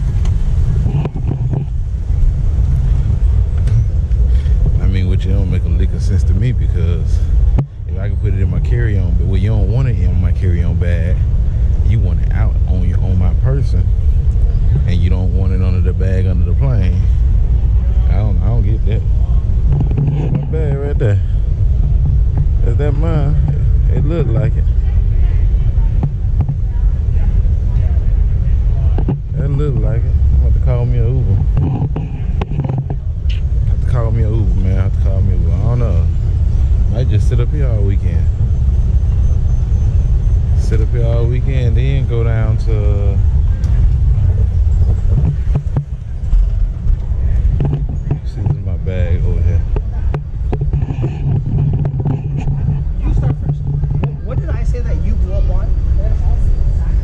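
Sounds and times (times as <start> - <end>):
escalator rumble: 0.0 - 57.0
indistinct voices talking: 0.0 - 57.0.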